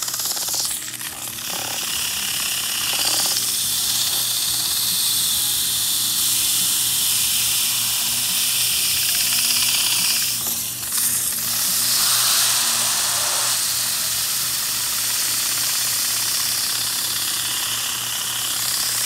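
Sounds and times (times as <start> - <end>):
sandpaper scratching metal: 0.0 - 14.7
fan motor humming: 0.0 - 19.0.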